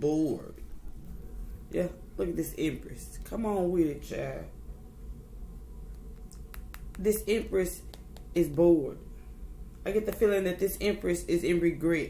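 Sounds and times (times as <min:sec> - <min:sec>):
low steady hum: 0:00.0 - 0:12.0
cards clicking in hands: 0:06.0 - 0:07.3.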